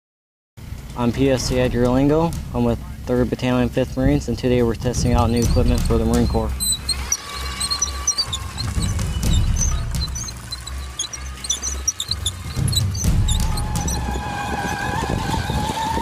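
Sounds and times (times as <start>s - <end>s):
tracked robots rumbling: 4.0s - 16.0s
squeaks from tracks: 4.1s - 16.0s
background music: 4.6s - 16.0s.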